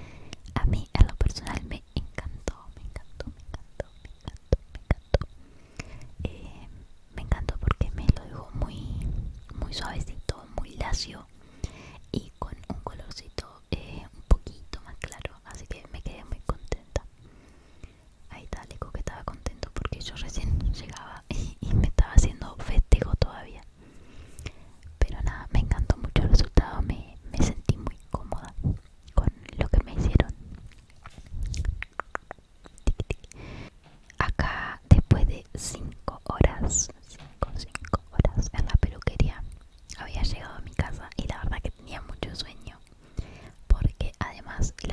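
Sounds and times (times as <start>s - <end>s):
soft close-up whispering: 0.0s - 44.9s
mouth clicks: 0.3s - 6.2s, 27.7s - 44.9s
sharp clicks and taps: 31.0s - 33.4s.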